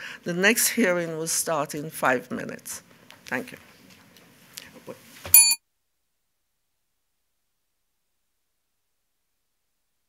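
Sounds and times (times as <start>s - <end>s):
bright bell-like ring with knock: 5.3s - 5.6s.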